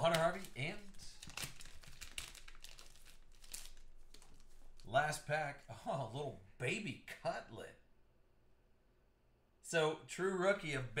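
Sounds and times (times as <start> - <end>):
foil wrapper crinkling and tearing: 0.0 - 4.9.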